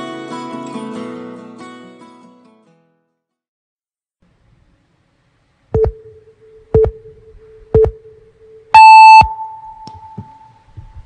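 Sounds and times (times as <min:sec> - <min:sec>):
short mid-pitched beep: 0:08.7 - 0:10.2.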